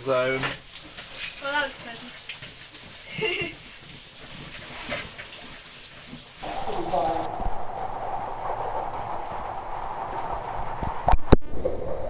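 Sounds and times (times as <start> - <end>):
stream water running: 0.0 - 11.4
person's voice: 6.4 - 7.3.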